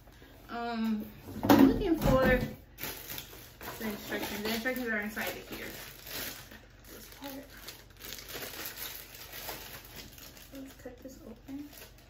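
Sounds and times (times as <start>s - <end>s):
plastic bag crinkling: 2.6s - 12.0s.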